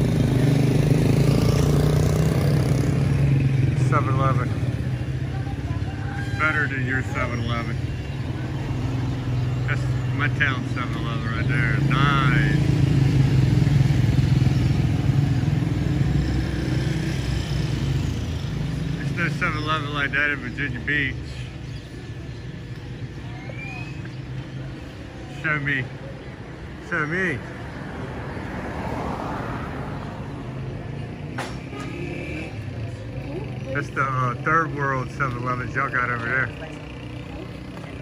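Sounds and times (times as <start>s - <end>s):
road and traffic noise: 0.0s - 38.0s
car passing close by: 27.8s - 30.7s.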